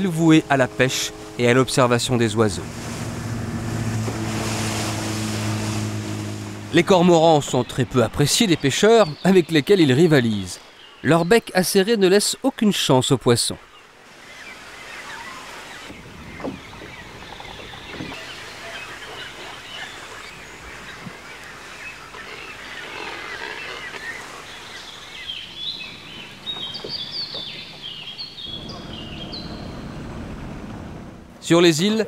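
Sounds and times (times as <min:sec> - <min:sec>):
birds calling and chirping: 0:00.0 - 0:11.6, 0:13.4 - 0:31.0
outdoor background noise: 0:00.0 - 0:32.0.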